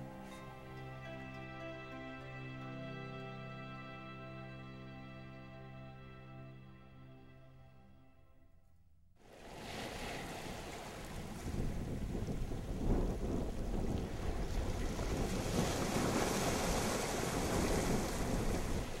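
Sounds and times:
surf: 0:09.2 - 0:19.0
wind buffeting microphone: 0:09.5 - 0:19.0.

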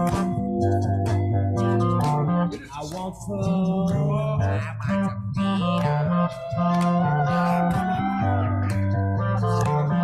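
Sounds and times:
rock band music: 0:00.0 - 0:02.8
bass guitar: 0:00.0 - 0:10.0.

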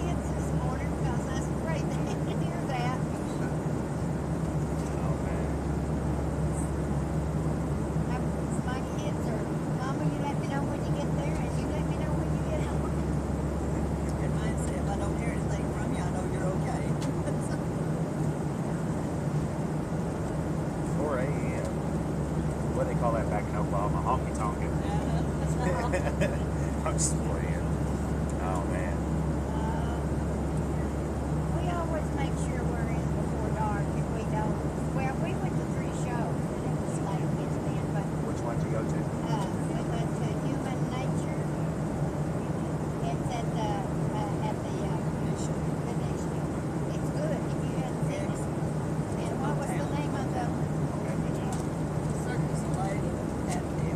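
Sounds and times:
murmur of passenger voices: 0:00.0 - 0:20.1, 0:20.9 - 0:53.9
airliner cabin drone: 0:00.0 - 0:53.9.

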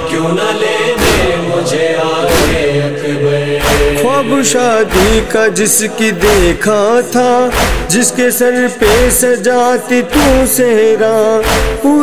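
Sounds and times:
chorus chanting a lament: 0:00.0 - 0:12.0
percussive beat: 0:01.0 - 0:01.5, 0:02.3 - 0:02.8, 0:03.6 - 0:04.2, 0:04.8 - 0:05.4, 0:06.2 - 0:06.8, 0:07.4 - 0:08.1, 0:08.8 - 0:09.3, 0:10.1 - 0:10.6, 0:11.4 - 0:12.0.

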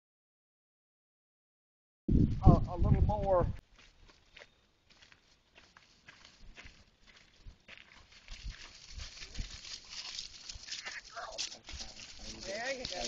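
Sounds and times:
hooves and footsteps in dry leaves: 0:03.6 - 0:13.0.

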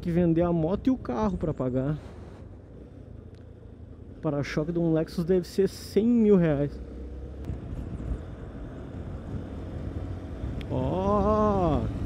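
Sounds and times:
motorcycle engine rumble: 0:00.0 - 0:12.0
wind and road noise: 0:00.0 - 0:12.0.

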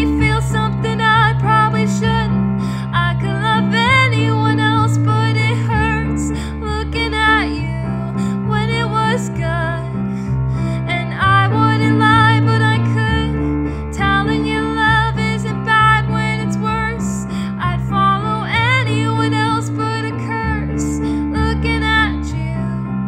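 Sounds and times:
woman singing: 0:00.0 - 0:10.0, 0:10.7 - 0:22.9
sustained low chords: 0:00.0 - 0:23.0.

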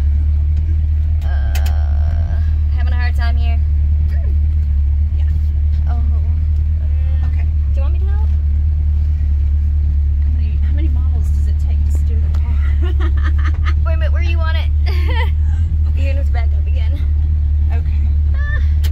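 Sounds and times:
car engine rumbling: 0:00.0 - 0:18.9.

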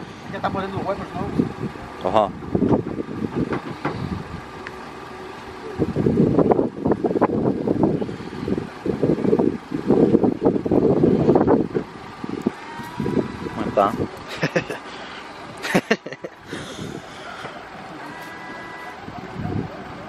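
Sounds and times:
person laughing: 0:14.2 - 0:14.9, 0:15.6 - 0:17.0.

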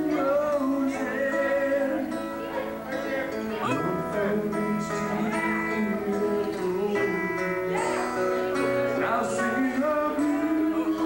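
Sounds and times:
guitar playing: 0:00.0 - 0:11.0
man singing into microphone: 0:00.0 - 0:11.0.

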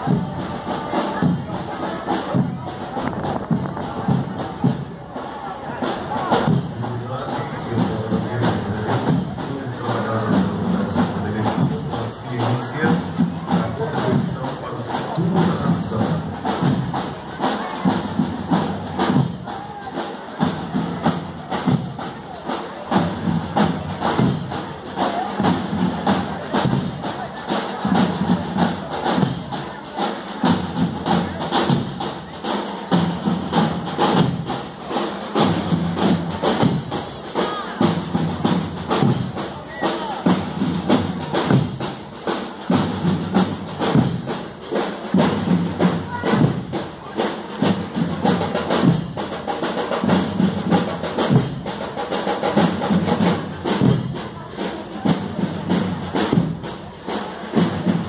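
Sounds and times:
marching band playing a march: 0:00.0 - 0:58.0
snare and bass drum strokes: 0:00.0 - 0:58.0.

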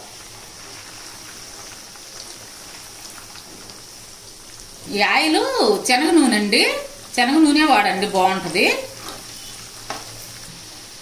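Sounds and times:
chicken deep-frying in oil: 0:00.0 - 0:11.0.

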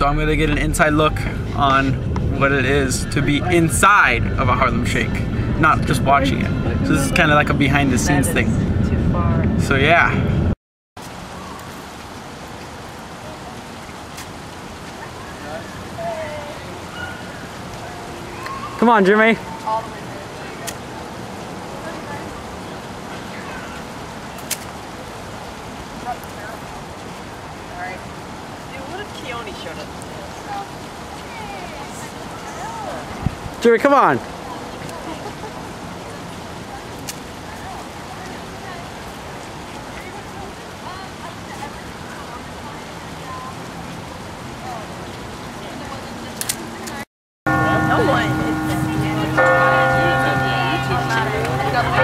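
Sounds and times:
distant voices: 0:00.0 - 0:10.1, 0:34.2 - 0:52.0
wind on microphone: 0:00.0 - 0:10.6, 0:33.1 - 0:33.6
outdoor noisy haze: 0:00.0 - 0:52.0.

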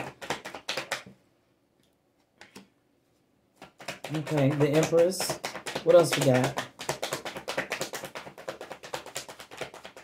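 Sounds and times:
cards being shuffled: 0:03.6 - 0:10.0.

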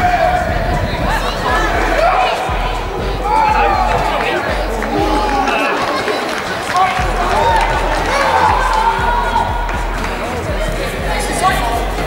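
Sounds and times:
low rumble: 0:00.0 - 0:05.4
players shouting: 0:00.0 - 0:12.0.

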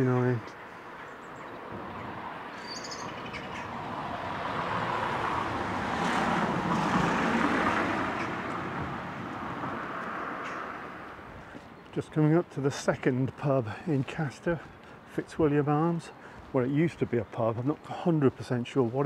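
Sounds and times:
car passing: 0:00.6 - 0:19.0.

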